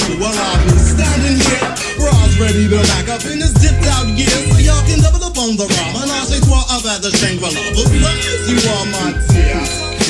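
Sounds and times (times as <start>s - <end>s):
hip hop drum beat: 0.0s - 10.0s
rapped vocals: 0.0s - 10.0s
deep falling bass notes: 0.6s - 5.0s.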